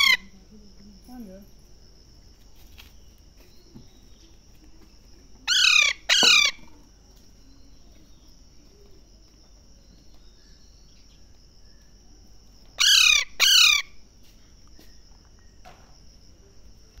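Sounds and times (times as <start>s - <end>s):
parrot calls dropping in pitch: 5.5s - 6.6s.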